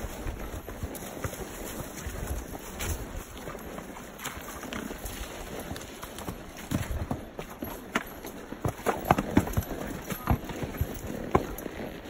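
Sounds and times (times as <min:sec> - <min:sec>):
mule hooves clopping on rocky ground: 0:00.0 - 0:12.0.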